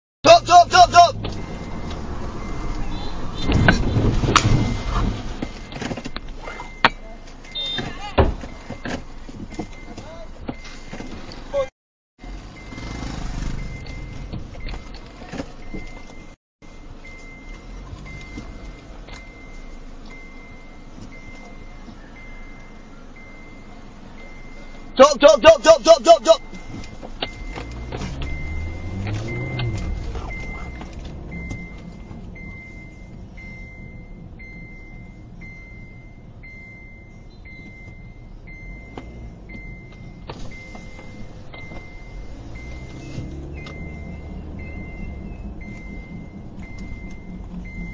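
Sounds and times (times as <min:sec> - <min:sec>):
road noise inside a car: 0:00.2 - 0:47.9.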